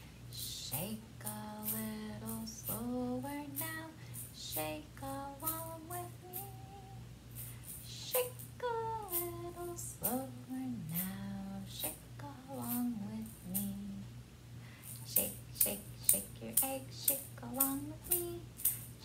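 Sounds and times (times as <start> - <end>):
egg shaker rattling: 0.3 - 14.0, 14.8 - 19.0
woman singing: 0.4 - 7.0, 7.9 - 14.1, 15.0 - 18.5.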